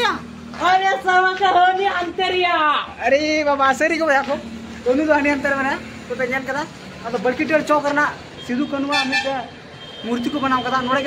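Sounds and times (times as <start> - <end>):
man speaking: 2.8 - 11.0.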